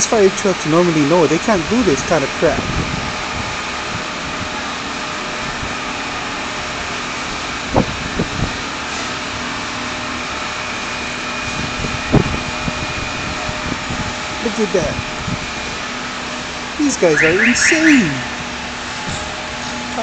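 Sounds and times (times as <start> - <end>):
distant truck engine rumble: 0.0 - 20.0
street hum: 0.0 - 20.0.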